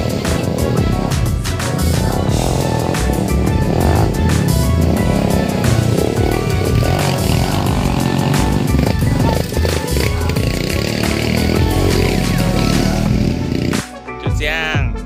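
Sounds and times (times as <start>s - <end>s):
dirt bike engine running: 0.0s - 13.9s
background music with a beat: 0.0s - 15.0s.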